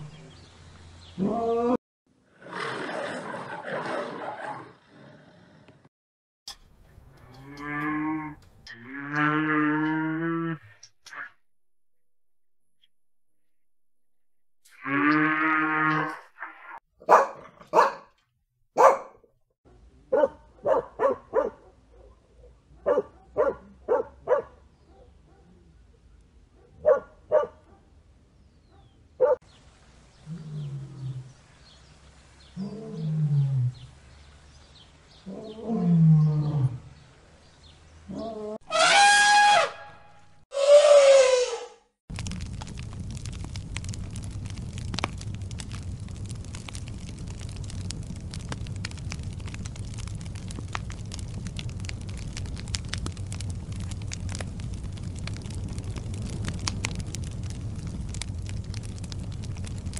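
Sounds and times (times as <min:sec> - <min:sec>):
low mooing call: 0:07.2 - 0:10.8, 0:14.7 - 0:16.6, 0:32.6 - 0:33.9, 0:35.3 - 0:37.0
dogs barking: 0:17.0 - 0:18.1, 0:18.8 - 0:19.2, 0:20.1 - 0:25.6, 0:26.6 - 0:27.9, 0:28.7 - 0:29.4
high-pitched animal calls: 0:38.1 - 0:41.8.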